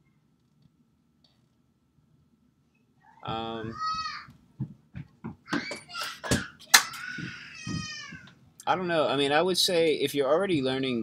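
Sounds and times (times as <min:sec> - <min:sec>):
child crying out: 0:03.2 - 0:04.3, 0:05.5 - 0:08.3.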